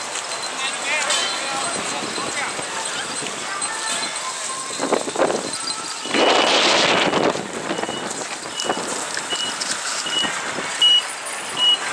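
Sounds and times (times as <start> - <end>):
road traffic noise: 0.0 - 11.9.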